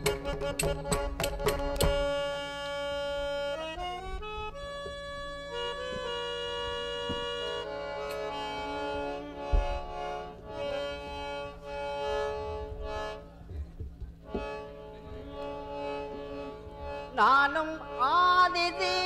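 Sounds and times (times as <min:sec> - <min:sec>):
harmonium melody: 0:00.0 - 0:19.0.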